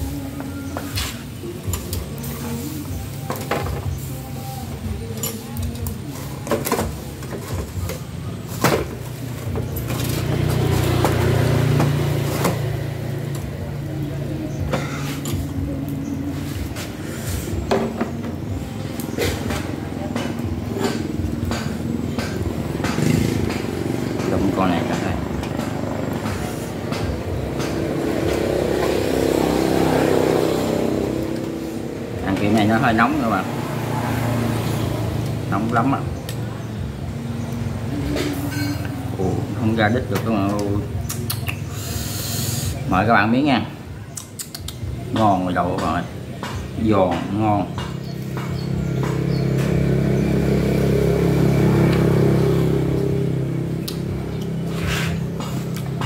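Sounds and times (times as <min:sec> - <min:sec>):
engine hum: 0:00.0 - 0:56.0
tongs clicking on shells and grate: 0:05.1 - 0:06.0
indistinct voices: 0:09.7 - 0:56.0.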